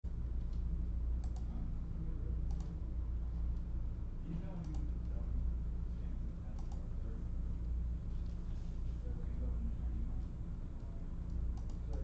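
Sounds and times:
steady low hum: 0.0 - 12.0
sharp light clicks: 4.6 - 4.9, 10.8 - 12.0.

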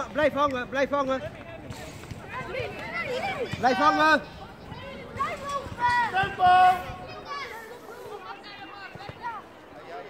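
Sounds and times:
people shouting short calls: 2.2 - 9.5.

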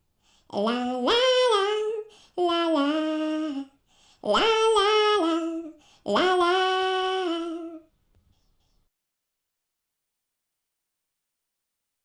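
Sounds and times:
high-pitched cartoon voice singing: 0.5 - 3.7, 4.3 - 7.8.

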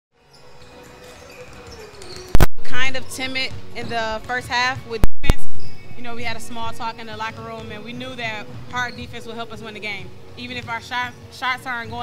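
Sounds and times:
basketballs bouncing on court: 10.4 - 12.0.

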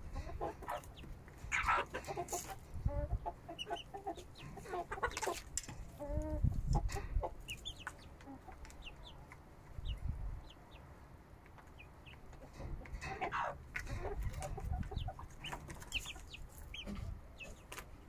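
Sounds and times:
chickens clucking: 0.0 - 18.0
chicks peeping: 0.0 - 18.0.

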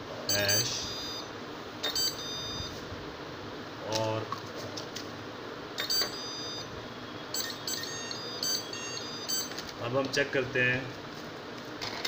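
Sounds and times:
short high-pitched beeps: 0.3 - 2.8, 5.8 - 9.6.

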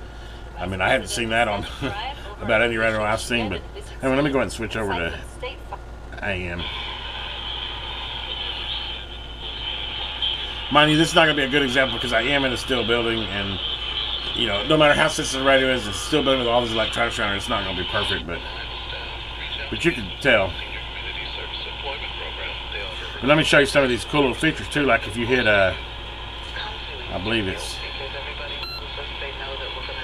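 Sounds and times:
low hum: 0.0 - 30.0
radio static hiss: 6.2 - 30.0.

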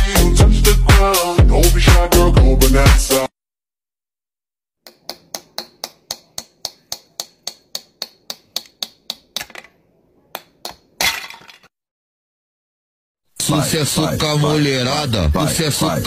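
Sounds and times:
crash of something breaking: 11.0 - 11.7.

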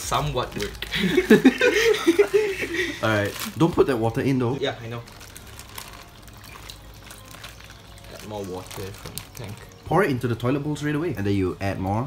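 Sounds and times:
water pouring and trickling: 0.0 - 12.0.

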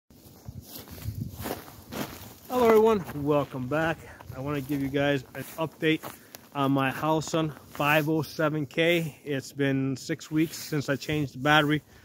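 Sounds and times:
footsteps on snow: 0.1 - 12.0.

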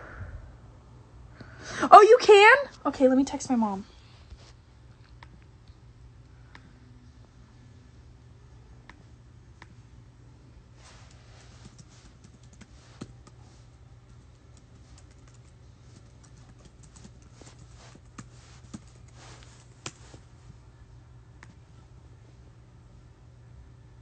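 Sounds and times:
steady low hum: 0.0 - 24.0
fingers tapping phone screen: 11.0 - 20.3.

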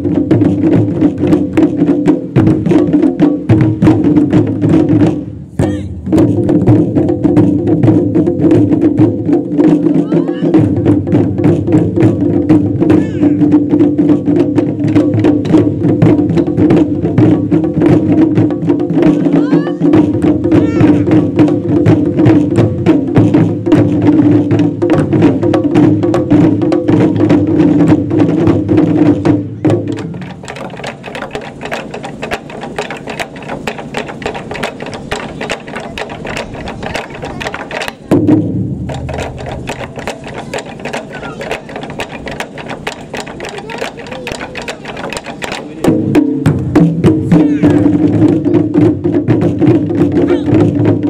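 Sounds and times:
ensemble drumming on barrel drums: 0.0 - 51.0.

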